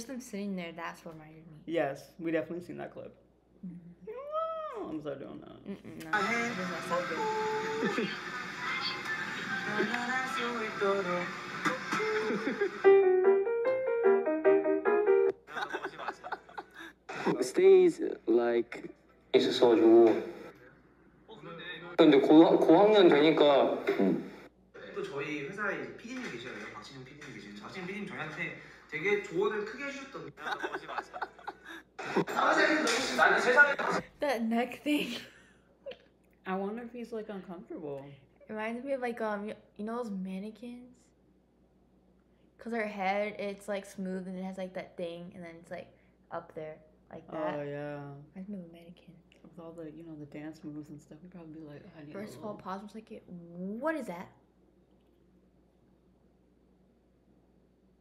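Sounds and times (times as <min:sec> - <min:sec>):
people talking and chuckling: 0:05.7 - 0:10.6, 0:11.6 - 0:12.8, 0:15.5 - 0:17.8, 0:30.3 - 0:34.0.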